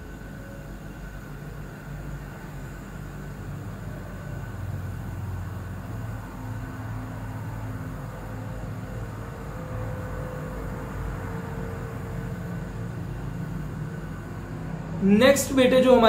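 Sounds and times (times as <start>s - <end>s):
faint high steady tone: 0.0s - 16.0s
low background rumble and hum: 0.0s - 16.0s.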